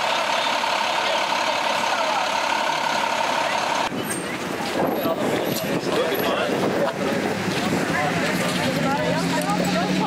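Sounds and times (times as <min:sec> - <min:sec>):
group of voices chattering: 0:00.0 - 0:10.0
wind rushing over microphone: 0:03.9 - 0:08.9.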